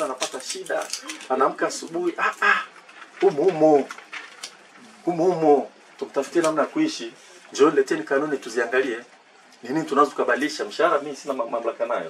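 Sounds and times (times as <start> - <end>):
man speaking: 0.0 - 3.9, 5.0 - 12.0.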